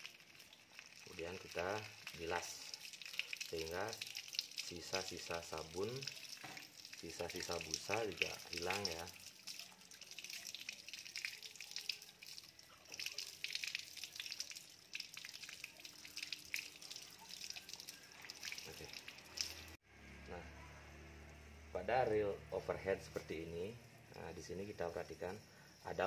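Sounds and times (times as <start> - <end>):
hose water splashing: 0.0 - 19.8, 22.5 - 26.0.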